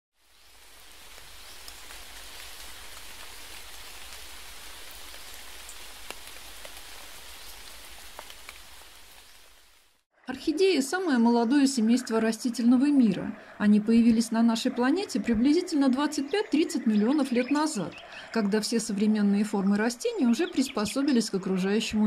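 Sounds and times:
rain falling on leaves: 0.2 - 10.0.

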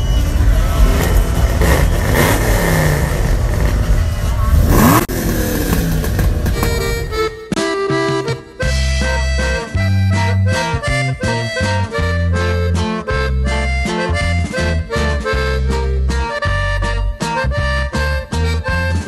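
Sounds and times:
engine revving: 0.0 - 7.6
car engines running: 0.0 - 19.0
music: 6.6 - 19.0.

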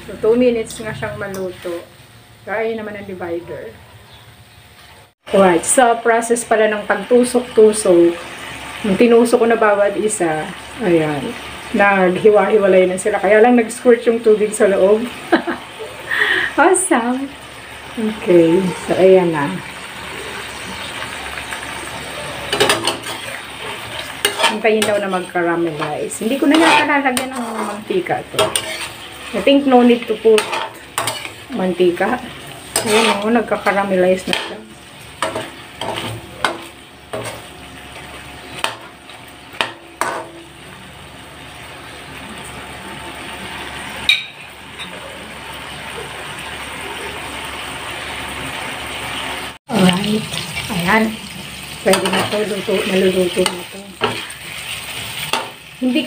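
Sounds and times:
sausages sizzling in fat: 0.0 - 56.0
metal spatula scraping pan: 22.2 - 37.5, 51.8 - 55.6.

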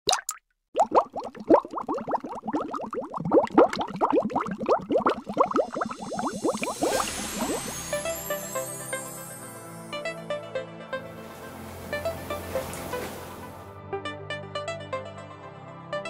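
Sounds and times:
bubbling water plops: 0.0 - 7.9
rising hiss: 6.2 - 9.3.

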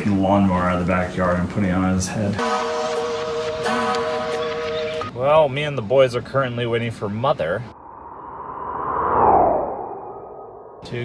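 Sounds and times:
echoing sonar-like tone: 7.8 - 10.9.

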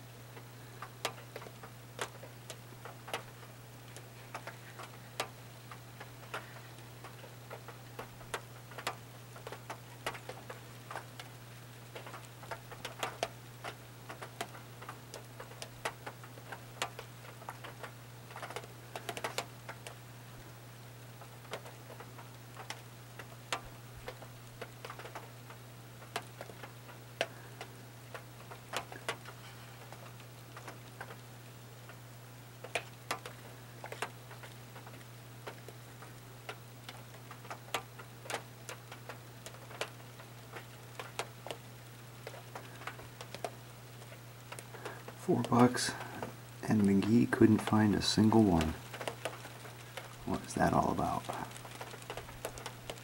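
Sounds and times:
low electrical hum: 0.0 - 53.0.

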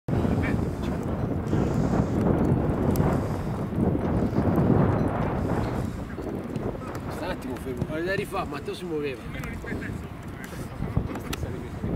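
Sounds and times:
wind buffeting microphone: 0.1 - 11.9.

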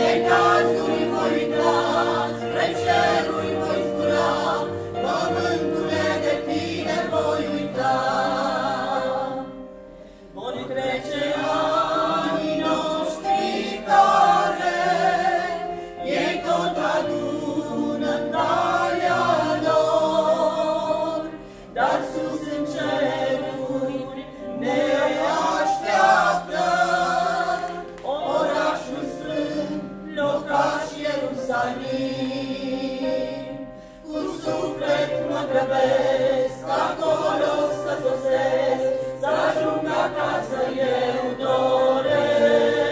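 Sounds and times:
mixed choir singing a hymn: 0.0 - 42.9.

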